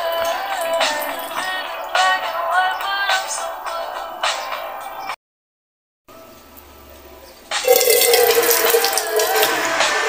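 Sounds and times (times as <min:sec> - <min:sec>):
song playing: 0:00.0 - 0:04.9, 0:07.5 - 0:10.0
water splashing over person: 0:07.7 - 0:09.6.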